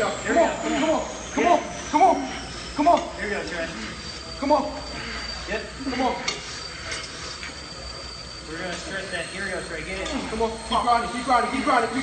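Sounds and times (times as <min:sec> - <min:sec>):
flywheel whine: 0:00.0 - 0:12.0.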